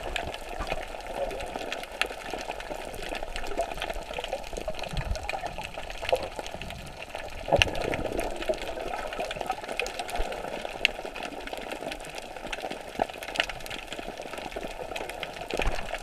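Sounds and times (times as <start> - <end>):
fine crackling clicks underwater: 0.0 - 16.0
sharp clicks underwater: 0.0 - 16.0.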